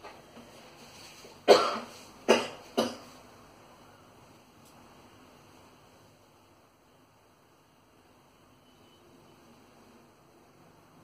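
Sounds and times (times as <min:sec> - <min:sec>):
person coughing: 0:01.4 - 0:03.1.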